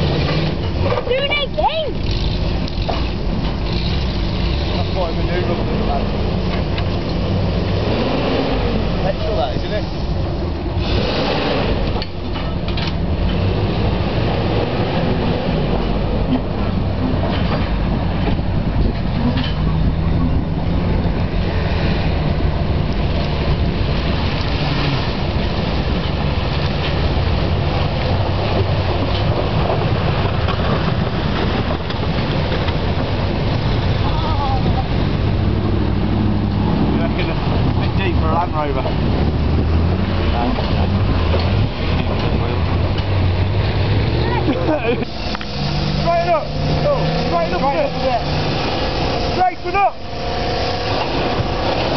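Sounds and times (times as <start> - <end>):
truck driving through mud and water: 0.0 - 51.9.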